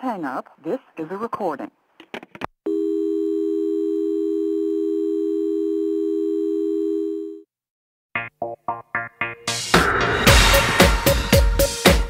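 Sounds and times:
telephone line tone: 0:02.7 - 0:07.5.

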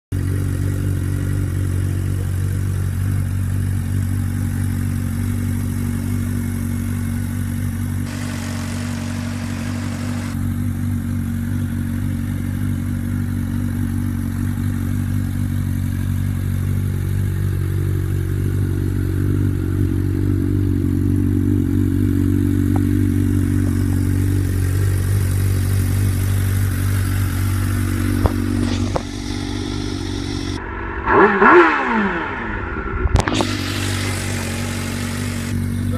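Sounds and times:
motorcycle engine idling: 0:00.1 - 0:30.7, 0:33.2 - 0:35.9.

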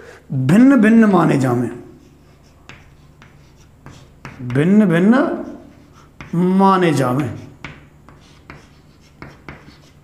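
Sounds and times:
chalk tapping on a blackboard: 0:02.0 - 0:04.8, 0:05.4 - 0:10.0.

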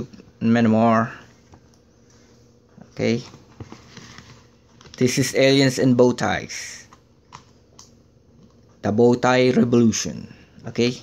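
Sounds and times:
man talking: 0:00.0 - 0:01.4, 0:02.8 - 0:03.4, 0:04.9 - 0:07.0, 0:08.8 - 0:11.0.

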